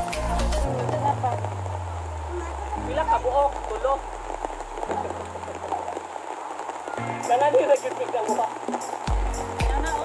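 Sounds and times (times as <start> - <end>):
rain pattering: 0.0 - 10.0.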